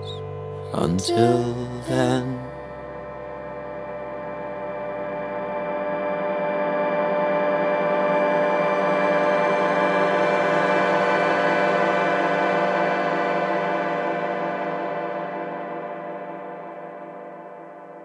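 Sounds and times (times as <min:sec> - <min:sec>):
orchestral held chord: 0:00.0 - 0:16.7.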